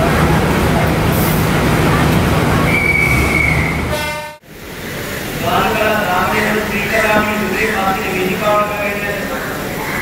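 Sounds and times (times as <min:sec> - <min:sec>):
train rumble: 0:00.0 - 0:10.0.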